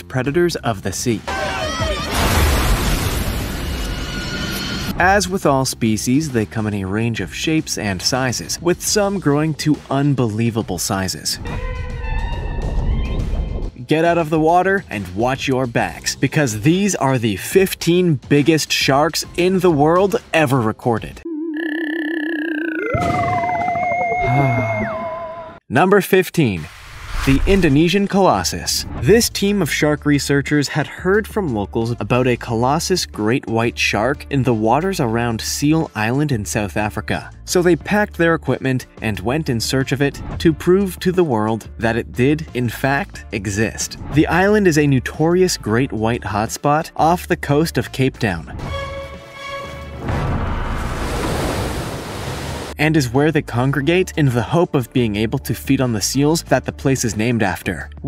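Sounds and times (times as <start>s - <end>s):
man narrating: 0.0s - 2.0s, 4.9s - 11.5s, 13.8s - 22.9s, 24.2s - 24.9s, 25.7s - 48.6s, 52.8s - 58.0s
seawater splashing and rushing: 50.0s - 52.8s.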